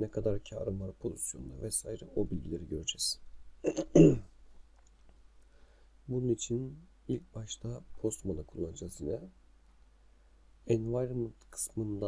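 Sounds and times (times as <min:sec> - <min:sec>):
man speaking: 0:00.0 - 0:04.3, 0:06.1 - 0:09.4, 0:10.6 - 0:12.0.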